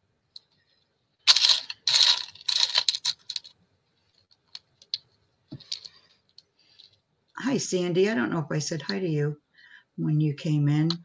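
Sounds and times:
small hard objects rattling: 1.2 - 3.6.

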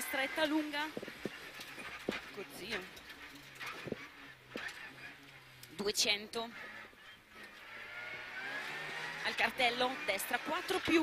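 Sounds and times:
car engine running: 0.0 - 11.0.

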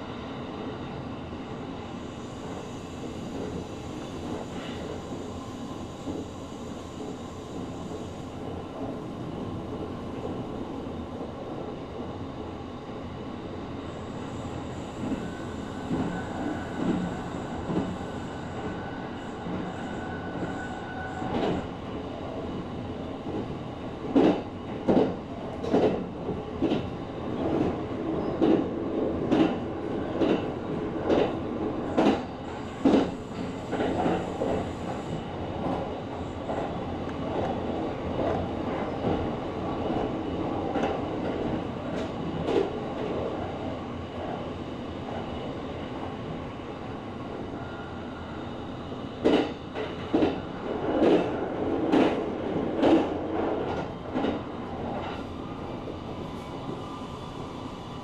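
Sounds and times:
train rumbling: 0.0 - 58.0
train wheel clacks: 24.1 - 27.8, 32.0 - 32.2, 32.8 - 35.0, 49.2 - 55.2.

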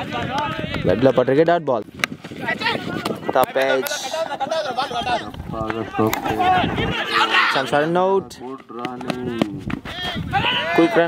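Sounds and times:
men shouting: 2.4 - 8.2, 9.9 - 11.0.

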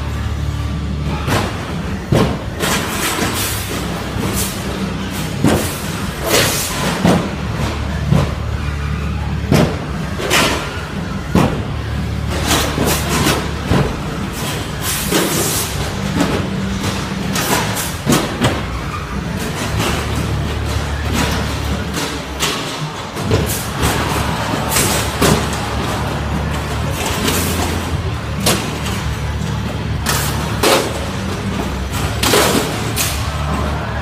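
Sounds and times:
low rumble of drive motors: 0.0 - 34.0
sharp noises: 1.1 - 34.0
sharp metal impacts: 12.3 - 33.6.

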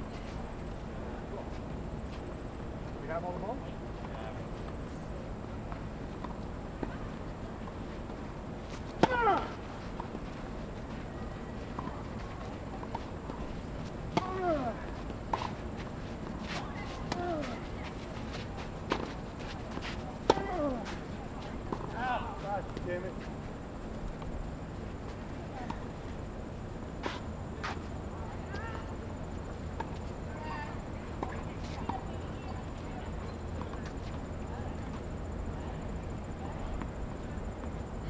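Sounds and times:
tennis balls struck by rackets: 5.6 - 23.0.

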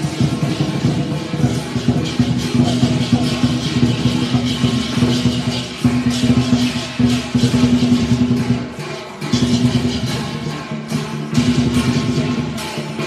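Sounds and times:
cymbal crashes: 0.0 - 13.0
rapid drumming: 0.0 - 13.0.

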